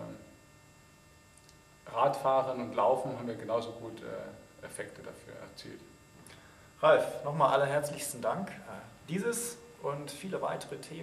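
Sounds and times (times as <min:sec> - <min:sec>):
faint electrical mains hum: 0:00.0 - 0:11.0
man speaking: 0:01.9 - 0:05.9, 0:06.8 - 0:11.0.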